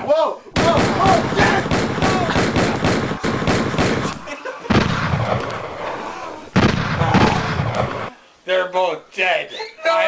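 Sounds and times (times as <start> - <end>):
man yelling: 0.0 - 2.4
airsoft gun rapid shots: 0.6 - 5.6.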